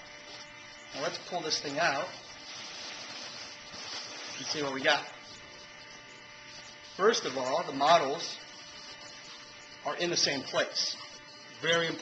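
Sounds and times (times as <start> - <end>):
foam scraping against fabric: 0.0 - 11.4.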